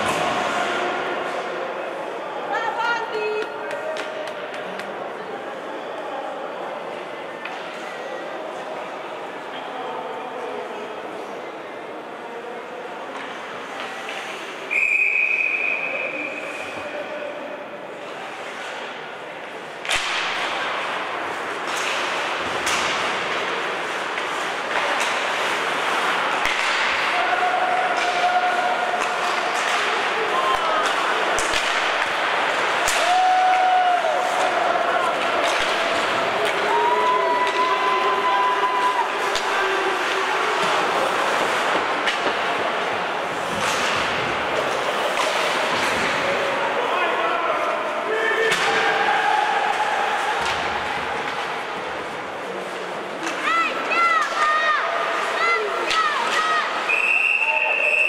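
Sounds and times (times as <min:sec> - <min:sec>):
hockey sticks and puck clacking: 0:00.0 - 0:02.1, 0:03.0 - 0:05.3, 0:06.9 - 0:08.4, 0:13.0 - 0:16.9, 0:17.9 - 0:58.0
spectators' voices and shouts: 0:00.0 - 0:58.0.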